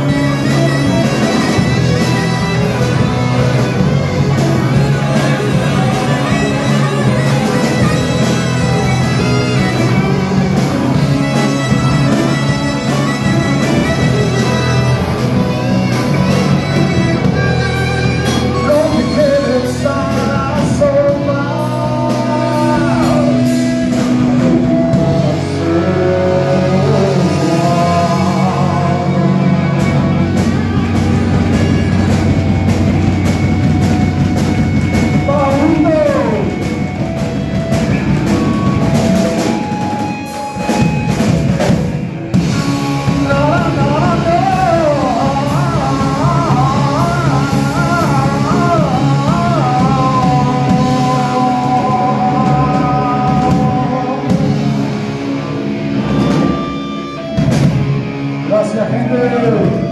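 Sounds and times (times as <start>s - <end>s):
electric guitars holding chords: 0.0s - 59.9s
live rock band: 0.0s - 59.9s.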